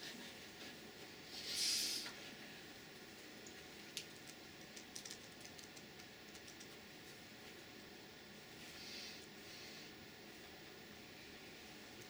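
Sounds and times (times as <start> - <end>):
laptop keys clicking: 3.4 - 6.7.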